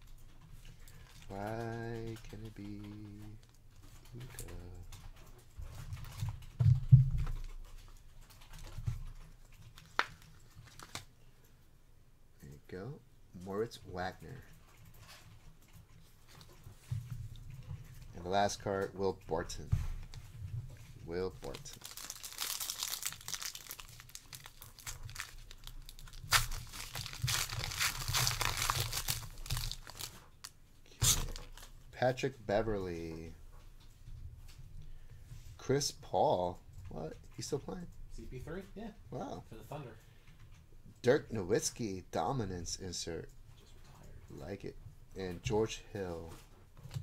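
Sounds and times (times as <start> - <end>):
foil wrapper tearing and crinkling: 9.8 - 11.1, 21.4 - 30.2, 31.0 - 31.7.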